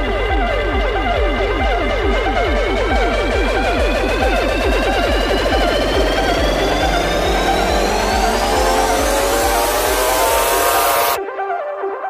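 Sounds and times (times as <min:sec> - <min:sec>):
psytrance music: 0:00.0 - 0:12.0
high synth tone rising: 0:01.7 - 0:11.2.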